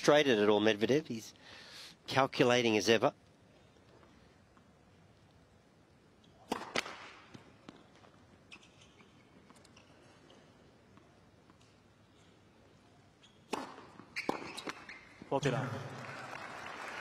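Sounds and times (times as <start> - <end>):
tennis ball struck by racket: 6.5 - 7.4, 13.5 - 14.8
stadium background: 15.2 - 17.0.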